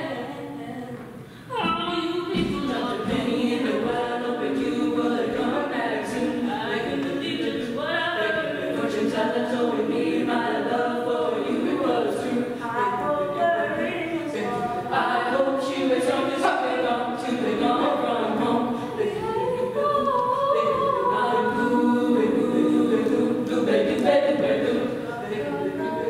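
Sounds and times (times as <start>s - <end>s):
women singing a cappella in harmony: 0.0s - 26.0s.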